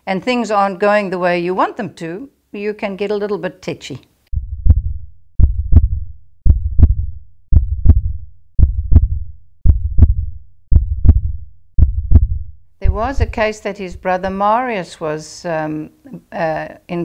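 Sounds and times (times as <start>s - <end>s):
heartbeat lub-dub thumps: 4.4s - 14.4s.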